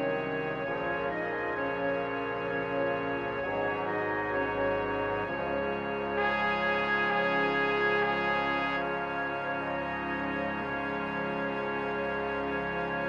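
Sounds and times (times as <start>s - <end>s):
concert band wind chords: 0.6s - 13.0s.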